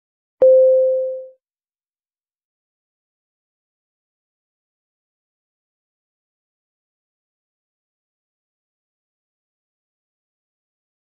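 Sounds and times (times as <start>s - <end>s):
electronic beep: 0.4s - 1.3s.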